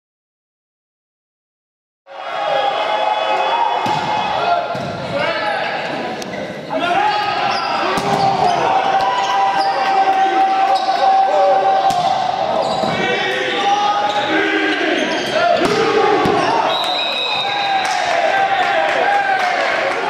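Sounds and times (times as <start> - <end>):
shouting voices echoing: 2.1 - 20.0
volleyball being hit: 3.8 - 5.1.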